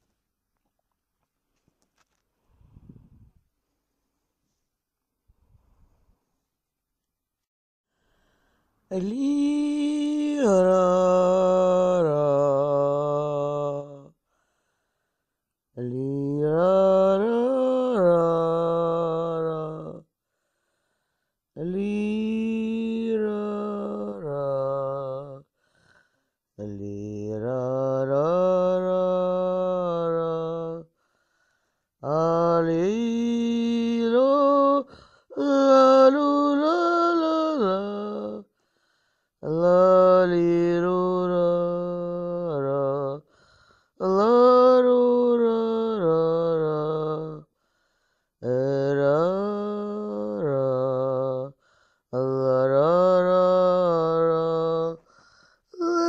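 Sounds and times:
person singing low wordless chant: 0:08.9 - 0:14.2, 0:15.8 - 0:20.1, 0:21.6 - 0:25.5, 0:26.6 - 0:30.9, 0:32.0 - 0:38.5, 0:39.4 - 0:43.3, 0:44.0 - 0:47.5, 0:48.4 - 0:56.0.

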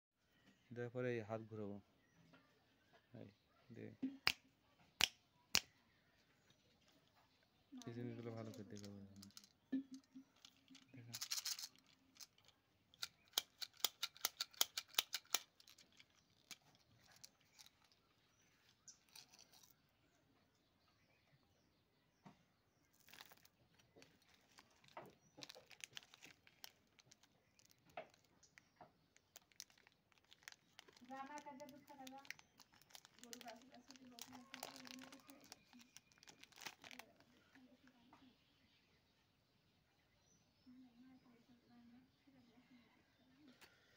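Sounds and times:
candy clicking against plastic tube: 0:07.8 - 0:17.9, 0:23.0 - 0:37.2
candy rustling: 0:07.8 - 0:19.8, 0:22.8 - 0:37.5
wrapper crinkling and tearing: 0:10.4 - 0:18.0, 0:22.9 - 0:37.3
faint low voice: 0:37.0 - 0:38.8, 0:40.6 - 0:43.9.

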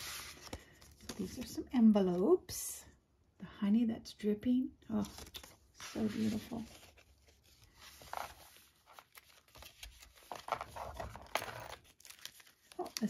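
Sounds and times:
paper rustling and sliding: 0:00.0 - 0:01.2, 0:05.1 - 0:12.8.

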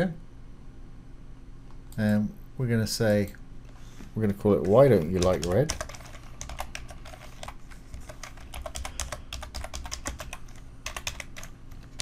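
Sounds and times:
faint low hum: 0:00.0 - 0:12.0
typing on computer keyboard: 0:04.6 - 0:12.0.

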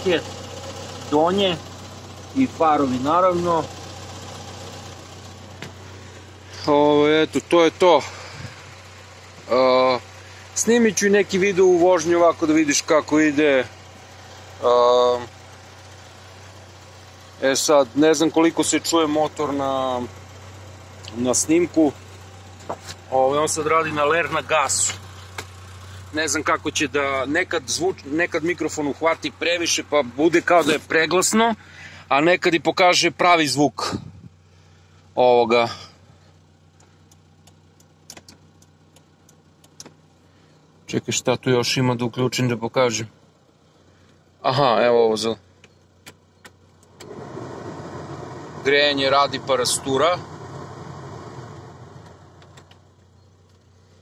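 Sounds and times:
car engine idling: 0:00.0 - 0:54.0.

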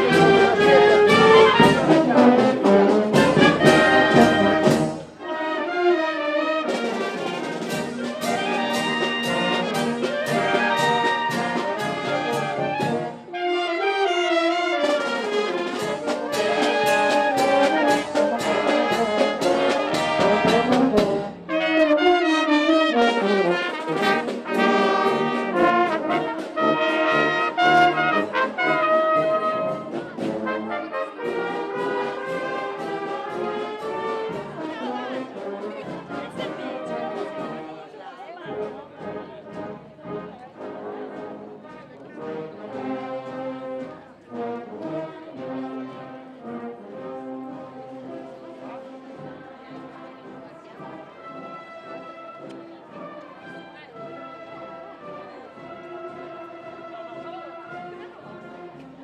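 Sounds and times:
marching brass band playing: 0:00.0 - 0:59.0.

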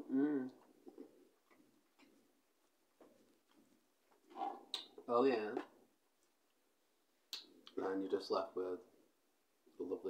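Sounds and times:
mouth sound while eating: 0:00.0 - 0:01.2.

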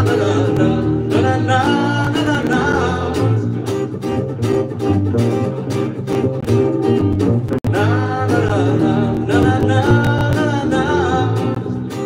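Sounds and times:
man singing: 0:00.0 - 0:03.9, 0:07.6 - 0:12.0
strummed acoustic guitar: 0:00.0 - 0:12.0.

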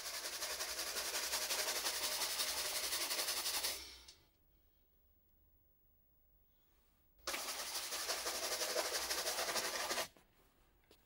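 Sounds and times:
brush scrubbing leather shoe: 0:00.0 - 0:03.7, 0:07.3 - 0:10.1.

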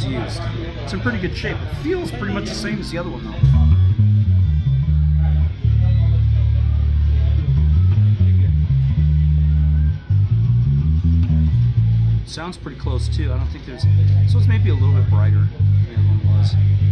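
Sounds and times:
bass guitar notes: 0:00.0 - 0:16.9.

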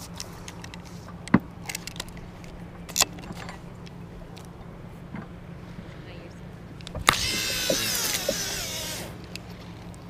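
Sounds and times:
fishing reel spool whirring: 0:06.8 - 0:09.6.

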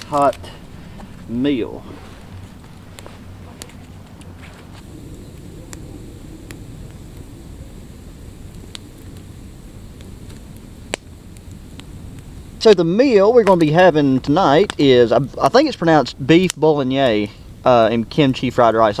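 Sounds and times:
campfire pops and crackles: 0:00.0 - 0:19.0
wind on microphone: 0:04.8 - 0:10.8.

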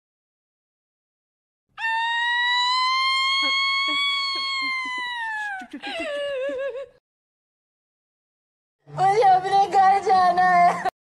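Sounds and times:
woman crying wail: 0:01.8 - 0:07.0.

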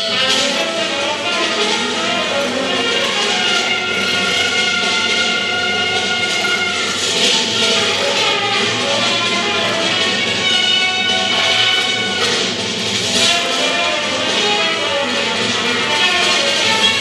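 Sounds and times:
jazz ensemble improvising: 0:00.0 - 0:17.0.

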